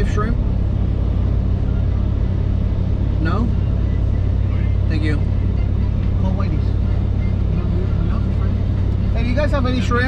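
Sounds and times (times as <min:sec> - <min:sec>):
engine and road noise in cab: 0:00.0 - 0:10.0.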